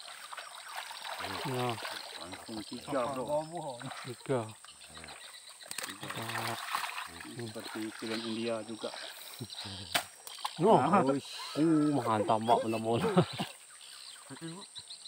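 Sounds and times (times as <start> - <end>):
men talking and calling out: 0.7 - 14.9.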